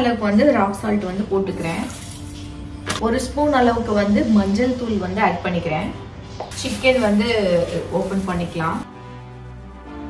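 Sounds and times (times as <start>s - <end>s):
woman talking: 0.0s - 2.0s, 3.0s - 8.9s.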